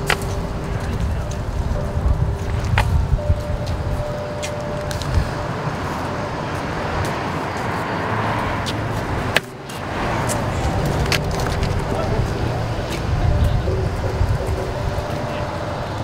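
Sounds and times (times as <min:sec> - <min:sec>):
road traffic noise: 0:00.0 - 0:16.0.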